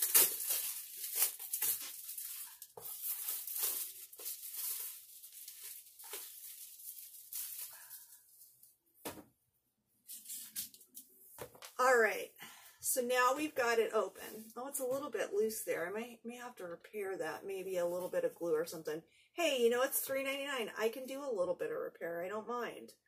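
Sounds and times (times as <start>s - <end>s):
plastic shrink wrap tearing: 0.0s - 8.6s.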